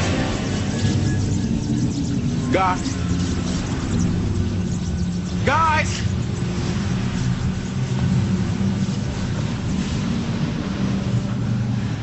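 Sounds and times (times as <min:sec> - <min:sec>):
low droning hum: 0:00.0 - 0:12.0.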